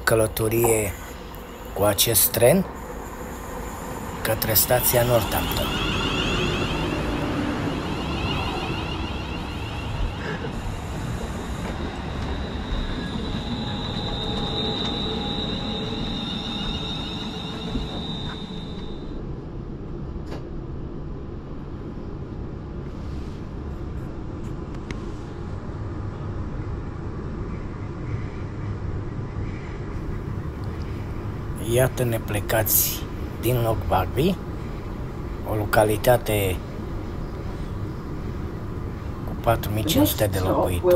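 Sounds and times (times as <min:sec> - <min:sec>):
train motor and brake whine: 0:00.0 - 0:20.6, 0:30.0 - 0:40.9
train rumble inside carriage: 0:00.0 - 0:40.9.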